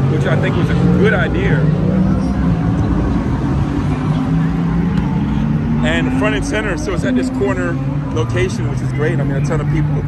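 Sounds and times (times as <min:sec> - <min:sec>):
low engine drone: 0:00.0 - 0:10.0
outdoor background noise: 0:00.0 - 0:10.0.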